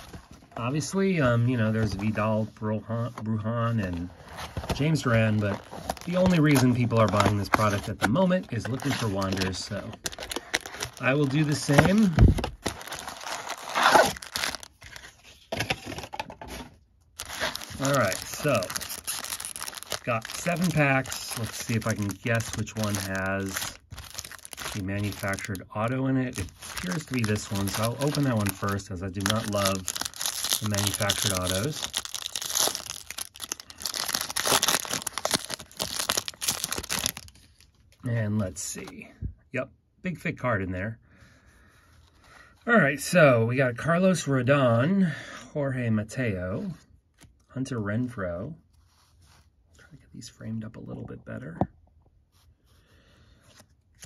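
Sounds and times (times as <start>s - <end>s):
foil packs crinkling: 4.7s - 15.2s, 17.2s - 37.6s
cardboard box tearing: 10.1s - 15.1s, 17.2s - 25.5s, 26.4s - 37.3s.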